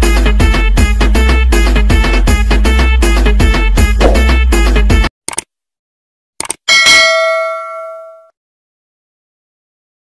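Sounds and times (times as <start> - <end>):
bell chime: 6.7 - 8.3.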